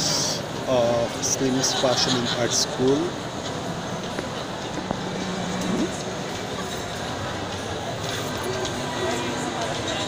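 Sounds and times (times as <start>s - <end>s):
faint voices: 0.0s - 10.0s
shopping mall background noise: 0.0s - 10.0s.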